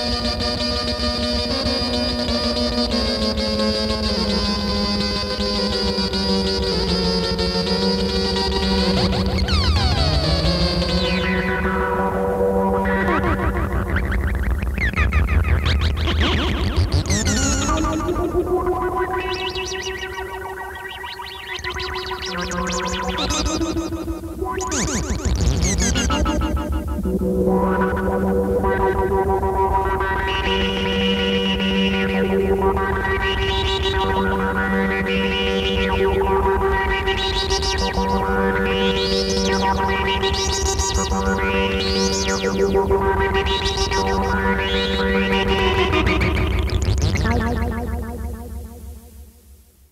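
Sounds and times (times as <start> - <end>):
modular synthesizer music: 6.5 - 49.4.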